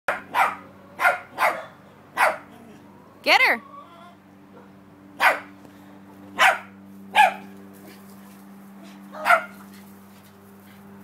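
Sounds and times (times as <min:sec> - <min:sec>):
dog barking: 0:00.1 - 0:02.5, 0:04.5 - 0:05.5, 0:06.4 - 0:07.5, 0:09.2 - 0:09.6.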